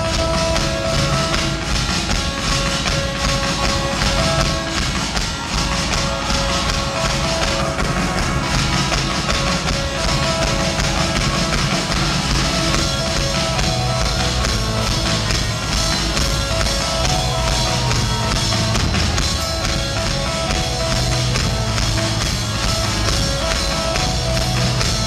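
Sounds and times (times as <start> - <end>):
repeating keyboard riff: 0.0 - 25.0.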